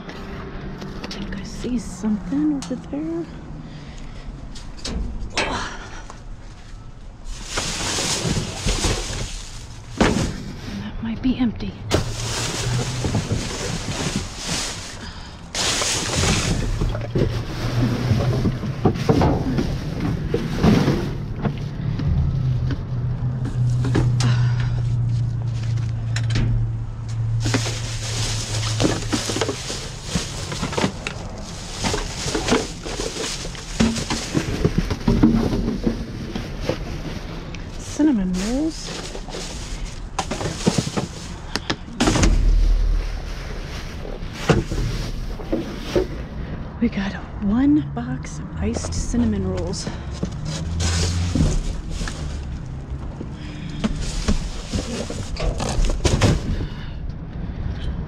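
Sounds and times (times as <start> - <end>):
trash bags and boxes rustling: 6.3 - 25.8, 27.2 - 47.2, 48.7 - 56.9.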